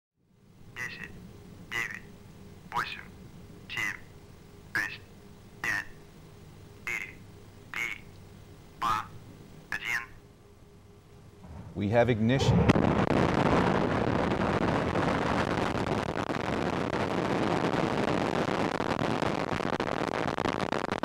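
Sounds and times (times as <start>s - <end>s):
steady low hum: 0.2s - 20.7s
countdown voice over loudspeaker: 0.8s - 2.1s, 5.6s - 6.0s, 6.8s - 8.1s, 8.8s - 10.2s.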